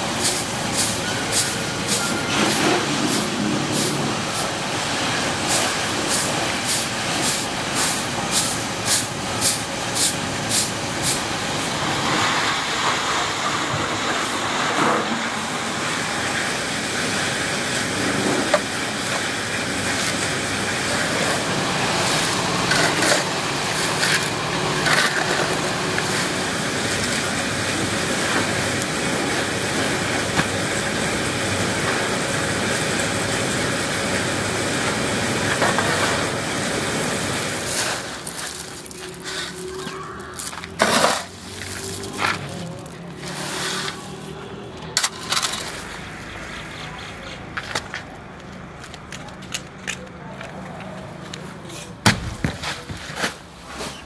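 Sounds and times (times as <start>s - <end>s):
broom sweeping on concrete: 0.0s - 13.1s, 19.9s - 27.4s, 35.5s - 44.5s, 45.3s - 47.8s, 52.6s - 54.0s
plastic flakes rustling: 36.8s - 44.4s.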